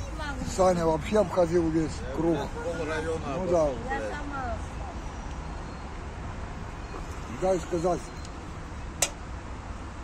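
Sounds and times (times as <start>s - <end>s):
outdoor background noise: 0.0s - 10.0s.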